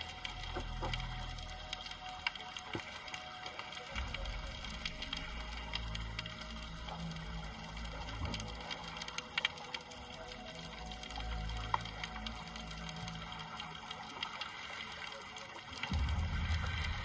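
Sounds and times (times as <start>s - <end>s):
underwater clicks and crackles: 0.0s - 17.0s
low underwater rumble: 15.9s - 17.0s.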